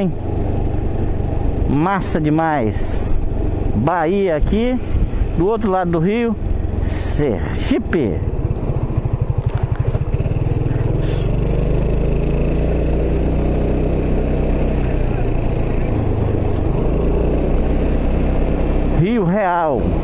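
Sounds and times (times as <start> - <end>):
scooter engine running: 0.0 - 20.0
wind noise on microphone: 4.3 - 5.5.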